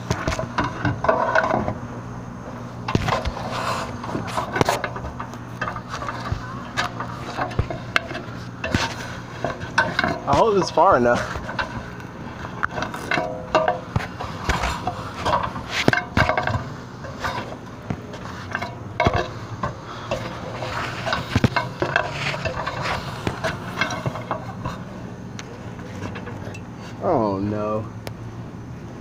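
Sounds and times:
metal ladder clanking: 0.0s - 1.8s, 2.9s - 24.9s.

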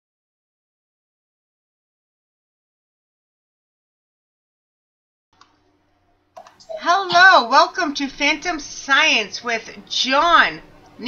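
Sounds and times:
clicks: 6.4s - 6.8s.

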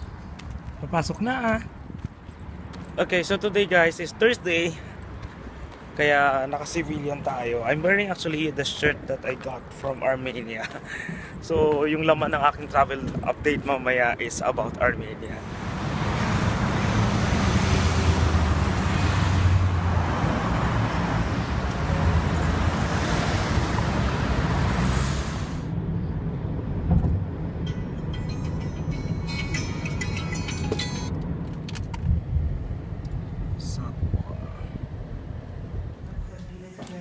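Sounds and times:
busy street traffic rumble: 0.0s - 37.0s
car cabin drone while driving: 15.4s - 36.6s.

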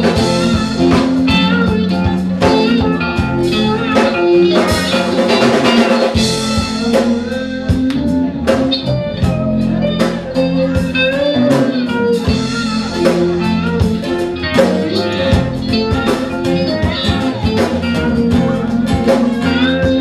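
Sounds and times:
drum kit beat: 0.0s - 20.0s
guitar with sliding notes: 0.0s - 20.0s.

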